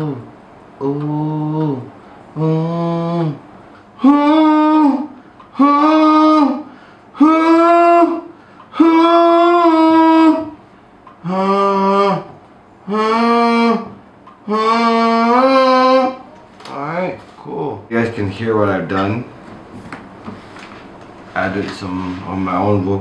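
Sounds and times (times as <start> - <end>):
man singing wordless melody: 0.0 - 3.4, 4.0 - 10.6, 11.2 - 16.2
breaths: 5.1 - 5.6, 6.7 - 7.2, 8.3 - 8.8, 10.6 - 11.0.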